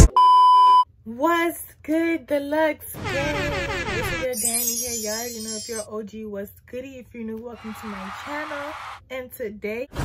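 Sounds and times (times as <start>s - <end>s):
woman speaking: 4.2s - 9.9s
high electronic beep: 4.3s - 5.9s.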